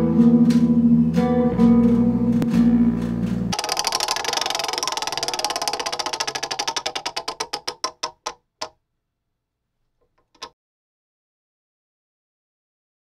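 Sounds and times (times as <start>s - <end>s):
acoustic guitar playing: 0.0s - 3.6s
rapid sharp clicks slowing down: 2.4s - 8.7s.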